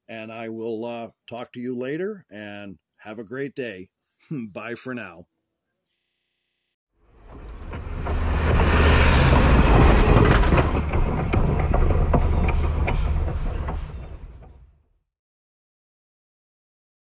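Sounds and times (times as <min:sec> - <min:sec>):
train rumbling past: 0:07.0 - 0:14.8
wheels clicking over rail joints: 0:07.1 - 0:14.7.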